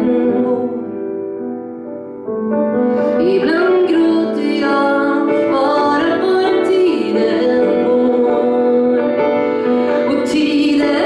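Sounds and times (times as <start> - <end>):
woman singing: 0.0 - 1.0, 3.1 - 11.0
grand piano: 0.0 - 11.0.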